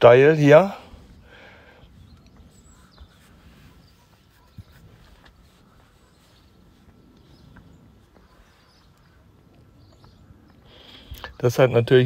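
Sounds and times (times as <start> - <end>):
bird chirps: 1.8 - 11.8.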